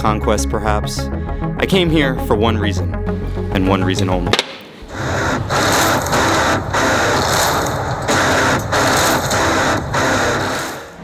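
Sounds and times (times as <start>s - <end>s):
loud dense soundtrack roar: 4.6s - 11.0s.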